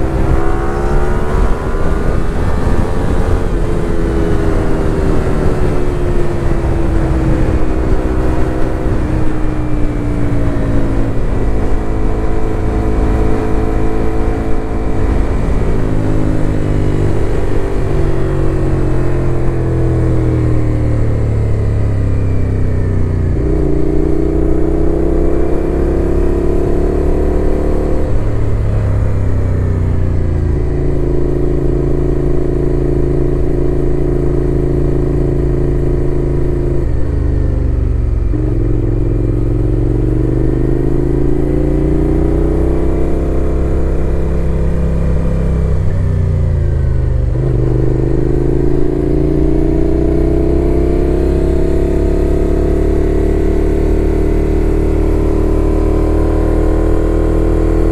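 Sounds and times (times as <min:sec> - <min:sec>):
motorcycle engine accelerating: 0:00.0 - 0:57.9.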